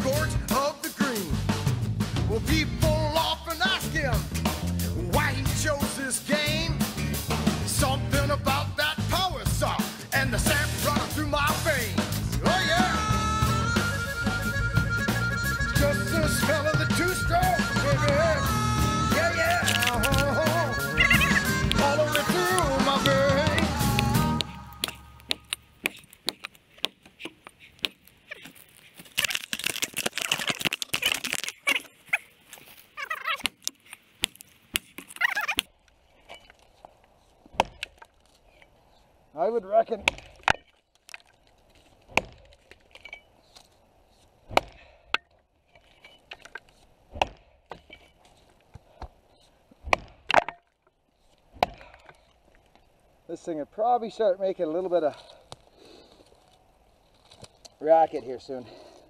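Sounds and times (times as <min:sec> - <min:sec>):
song: 0:12.4 - 0:25.3
axe chopping wood: 0:19.4 - 0:20.6, 0:21.2 - 0:28.7, 0:37.5 - 0:38.2, 0:39.8 - 0:41.4, 0:42.0 - 0:42.8, 0:44.5 - 0:45.4, 0:46.4 - 0:48.1, 0:49.8 - 0:50.8, 0:51.5 - 0:52.2.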